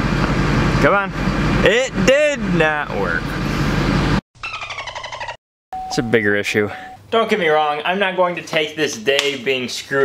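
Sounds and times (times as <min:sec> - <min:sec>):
truck cabin noise: 0:00.0 - 0:04.2.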